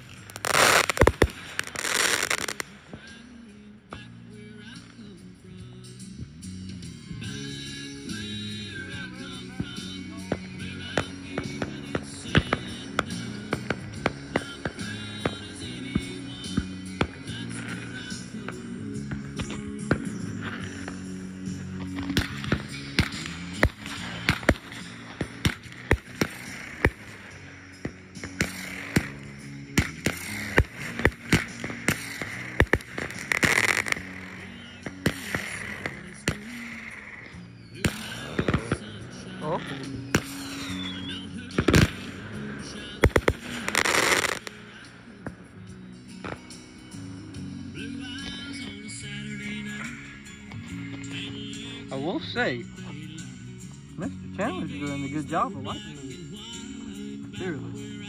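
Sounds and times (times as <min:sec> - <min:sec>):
fireworks banging: 0:00.0 - 0:03.3, 0:09.6 - 0:45.5
background music: 0:00.0 - 0:58.0.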